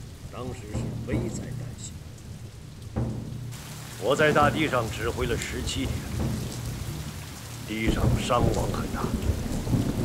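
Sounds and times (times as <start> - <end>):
rain falling: 0.0 - 10.0.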